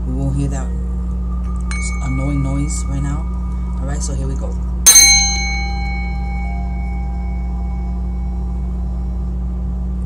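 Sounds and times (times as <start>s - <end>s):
low outside drone: 0.0s - 10.0s
singing bowl ringing: 0.4s - 10.0s.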